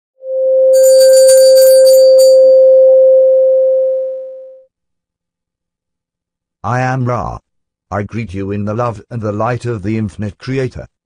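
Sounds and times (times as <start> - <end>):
bell-like tone: 0.7 - 4.6
high chime shimmer: 0.8 - 2.8.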